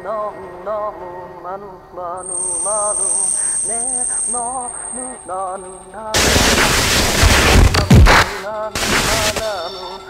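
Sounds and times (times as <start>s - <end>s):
person singing wavering syllables: 2.2s - 5.7s
harsh dense noise blast: 6.2s - 9.6s.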